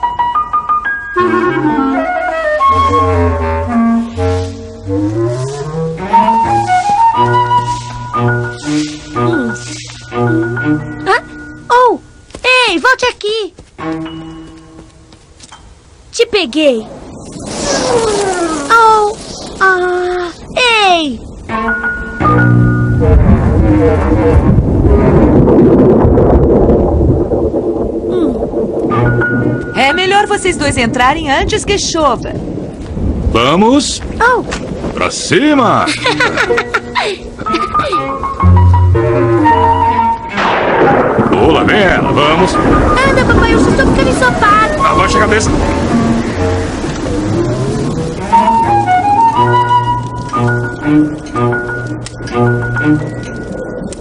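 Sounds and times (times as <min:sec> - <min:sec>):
woodwind tune: 0:00.1 - 0:12.2, 0:37.4 - 0:40.5, 0:47.1 - 0:53.8
thunder rumbling: 0:01.2 - 0:12.3, 0:15.8 - 0:54.0
bass line: 0:22.3 - 0:27.3, 0:38.4 - 0:41.3.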